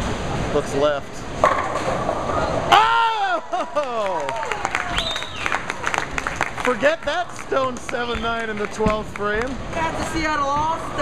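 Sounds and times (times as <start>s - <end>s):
bowling pins crashing: 1.4s - 2.8s
men yelling and cheering: 2.6s - 5.2s
people clapping: 3.6s - 10.5s.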